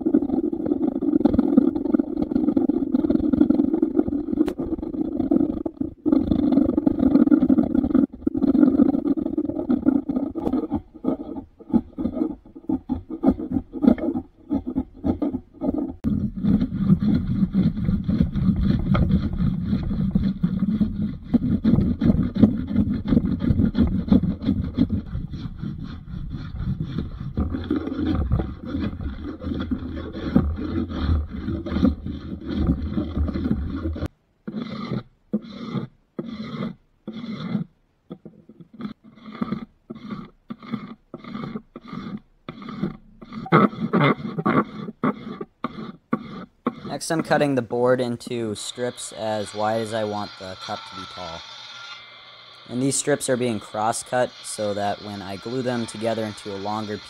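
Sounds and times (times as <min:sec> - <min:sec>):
hand plane shaving wood: 0:00.0 - 0:37.7, 0:38.6 - 0:57.0
scraper scraping wood: 0:00.0 - 0:57.0.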